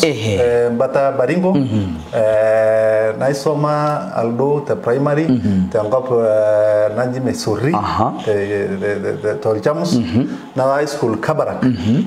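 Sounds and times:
man speaking: 0:00.0 - 0:12.0
man's drawn-out hesitation sound: 0:00.0 - 0:12.0.

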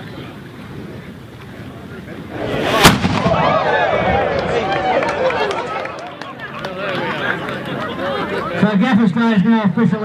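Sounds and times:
cannon bang: 0:02.3 - 0:04.3
crowd cheering: 0:02.3 - 0:08.7.

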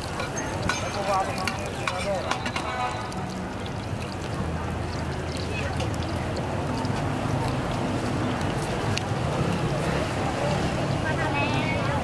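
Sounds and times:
frying in oil: 0:00.0 - 0:12.0.

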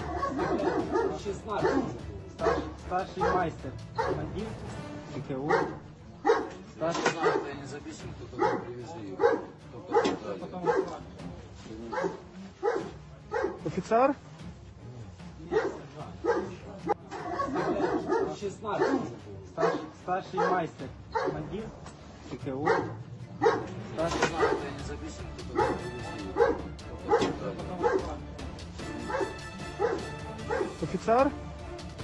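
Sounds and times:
dog barking: 0:00.0 - 0:04.4, 0:05.4 - 0:07.7, 0:08.3 - 0:11.0, 0:11.8 - 0:13.6, 0:15.5 - 0:21.6, 0:22.6 - 0:28.2, 0:29.0 - 0:30.9.

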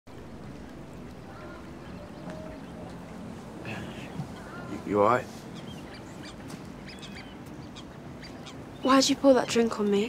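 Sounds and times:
outdoor background noise: 0:00.1 - 0:10.0
faint bird calls: 0:00.9 - 0:10.0.

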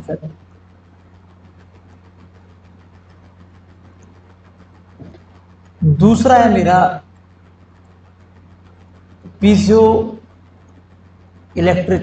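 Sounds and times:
steady low hum: 0:00.0 - 0:12.0
faint fast ticking: 0:00.1 - 0:12.0.

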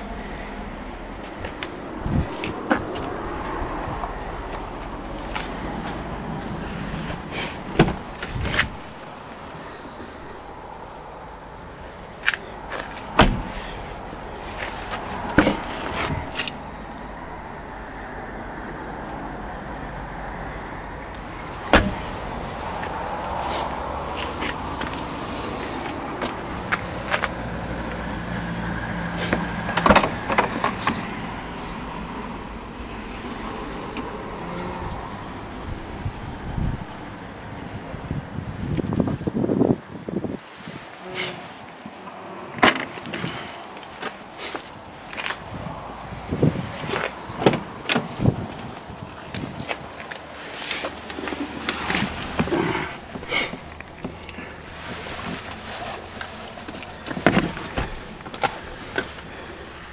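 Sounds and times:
low rumble: 0:00.0 - 0:12.2, 0:15.2 - 0:20.4
car door shutting: 0:07.0 - 0:09.1, 0:12.2 - 0:14.0, 0:14.9 - 0:16.6, 0:21.7 - 0:22.2, 0:29.3 - 0:31.1, 0:57.0 - 0:59.1
car door low thud: 0:07.7 - 0:09.0, 0:13.2 - 0:13.8, 0:21.7 - 0:22.2
car door clicks and knocks: 0:07.8 - 0:09.0, 0:13.2 - 0:13.6, 0:21.7 - 0:22.1, 0:29.7 - 0:31.0.

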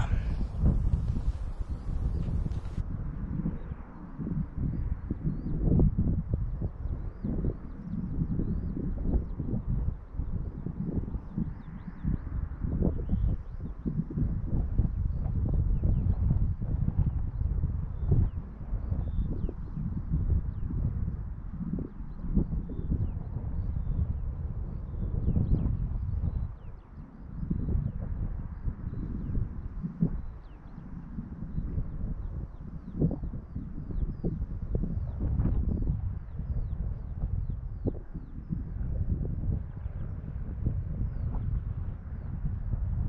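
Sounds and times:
gusty wind buffeting microphone: 0:00.0 - 0:43.0.

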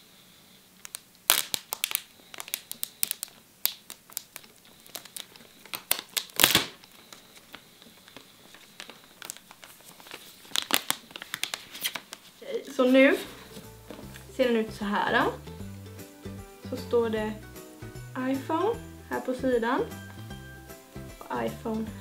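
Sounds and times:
plastic film crinkling and tearing: 0:00.8 - 0:12.4.

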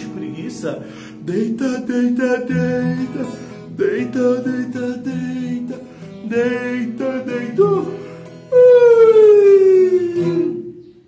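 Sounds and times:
guitar strum: 0:00.0 - 0:11.0.

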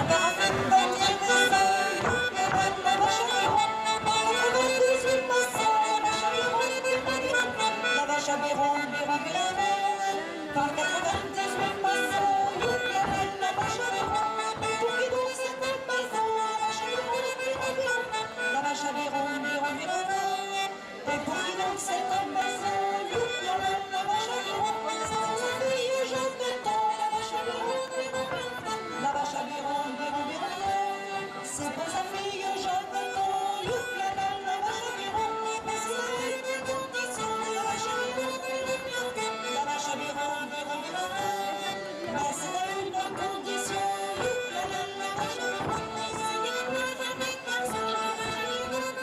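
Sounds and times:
accordion folk dance tune: 0:00.0 - 0:49.0.

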